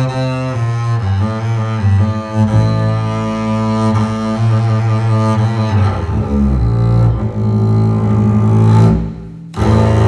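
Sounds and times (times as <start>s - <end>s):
bowed double bass: 0.0s - 10.0s.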